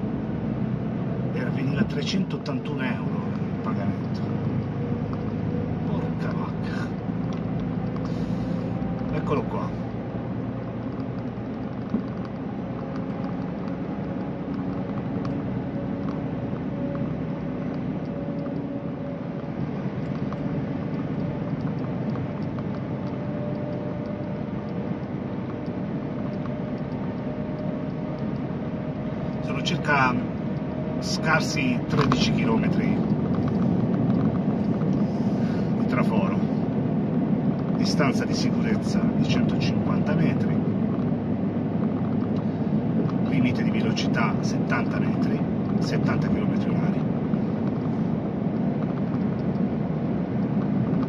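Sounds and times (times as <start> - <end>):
vehicle engine and tyres droning: 0.0 - 51.0.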